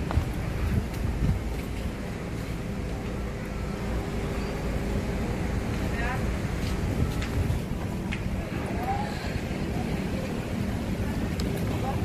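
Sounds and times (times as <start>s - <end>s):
faint engine hum: 0.0s - 12.0s
low rumble of traffic: 0.0s - 12.0s.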